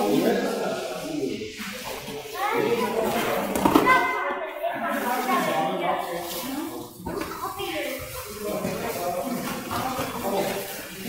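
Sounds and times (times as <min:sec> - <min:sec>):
children talking and calling out: 0:01.8 - 0:11.0.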